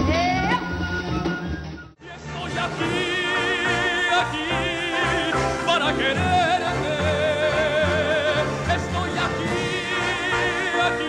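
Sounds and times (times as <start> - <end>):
orchestral accompaniment: 0.4 - 11.0
man singing a dramatic ballad: 2.2 - 11.0.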